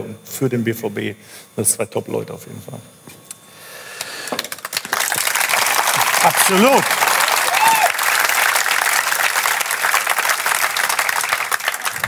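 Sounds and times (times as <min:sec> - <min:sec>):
audience applause: 0:04.3 - 0:12.0.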